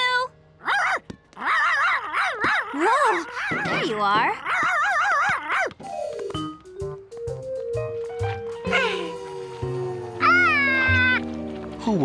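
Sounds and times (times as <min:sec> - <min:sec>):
cartoon monkey cry: 0:00.6 - 0:05.7, 0:10.2 - 0:11.2
background music: 0:05.7 - 0:12.0.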